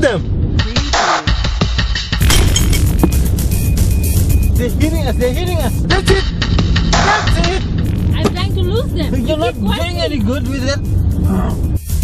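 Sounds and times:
background music: 0.0s - 12.0s
car engine and road noise: 0.0s - 12.0s.

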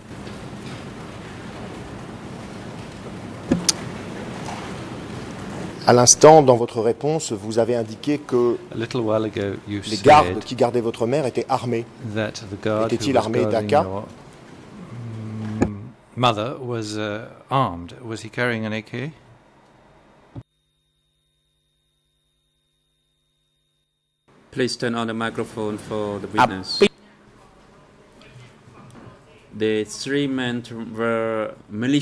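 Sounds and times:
room noise hiss: 0.0s - 32.0s
man saying uhh: 14.8s - 16.0s.

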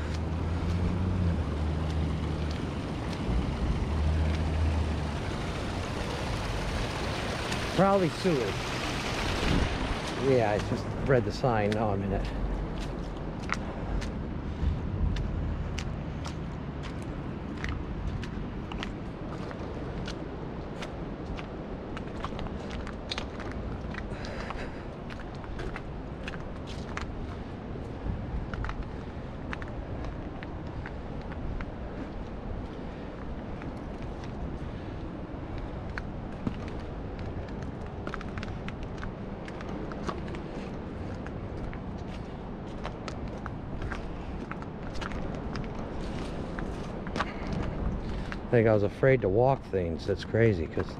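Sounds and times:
water rushing: 0.0s - 14.0s
footsteps on gravel: 7.8s - 31.4s, 36.4s - 48.5s.

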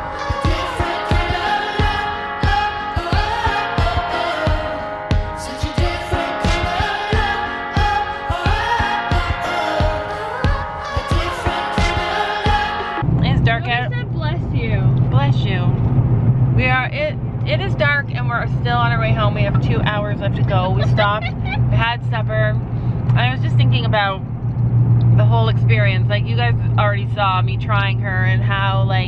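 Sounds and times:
car cabin rumble: 12.5s - 29.0s
woman talking: 13.2s - 15.8s, 16.6s - 22.6s, 23.2s - 24.2s, 25.2s - 29.0s.

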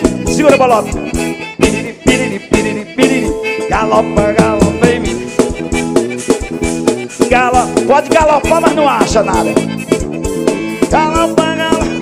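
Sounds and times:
live band playing: 0.0s - 12.0s
melodic instrument line: 0.0s - 12.0s
steady drum beat: 0.0s - 12.0s.

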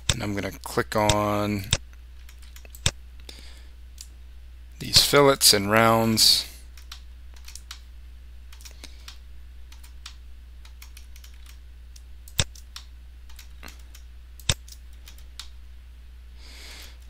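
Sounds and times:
low electrical hum: 0.0s - 17.0s
computer mouse clicking: 1.0s - 3.0s, 6.7s - 7.8s, 8.5s - 15.6s.

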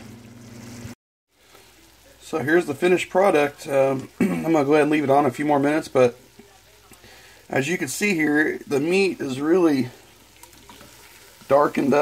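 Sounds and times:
food sizzling in a frying pan: 0.0s - 12.0s.

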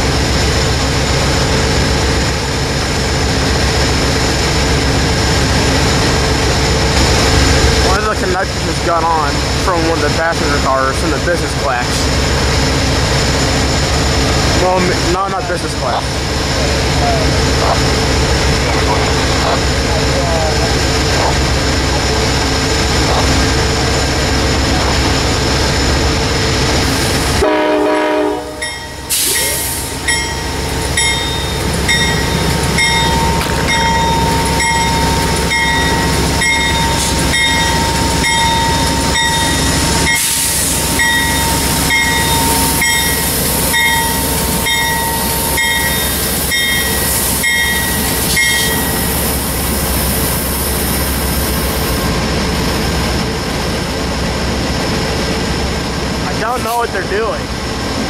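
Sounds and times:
diesel locomotive engine running: 0.0s - 58.0s
locomotive bell ringing: 27.4s - 49.7s.

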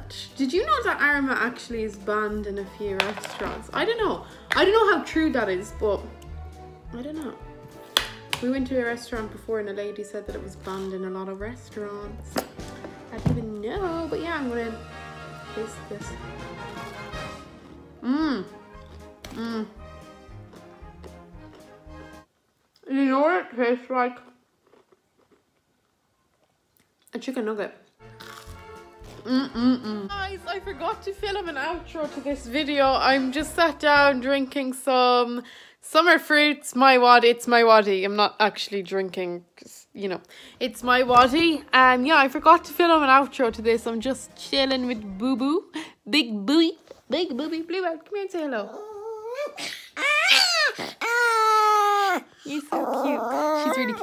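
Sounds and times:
chewing with mouth closed: 24.6s - 25.6s
small dog howling: 48.7s - 54.0s.

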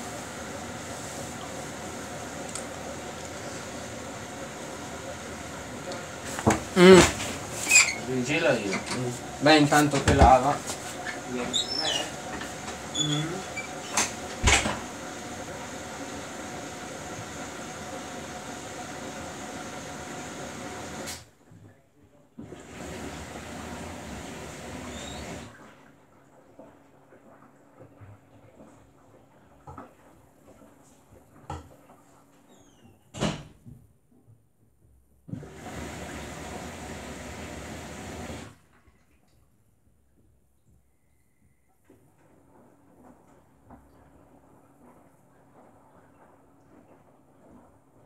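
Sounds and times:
washing machine water rushing: 0.0s - 21.4s, 22.4s - 32.6s, 35.3s - 39.7s, 41.9s - 48.0s
washing machine drum knocking: 8.9s - 10.5s.

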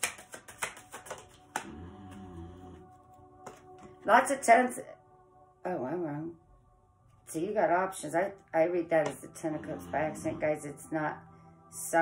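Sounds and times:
cards being shuffled: 0.0s - 1.7s
quiet sustained tune: 1.3s - 12.0s.

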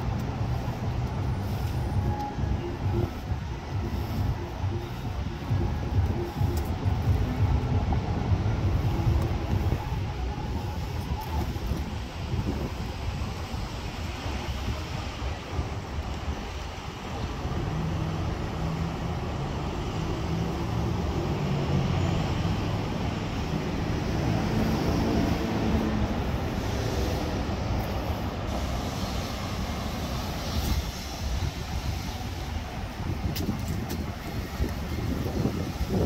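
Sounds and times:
heavy vehicle engine drone: 0.0s - 36.0s
street traffic rumble: 0.0s - 36.0s.

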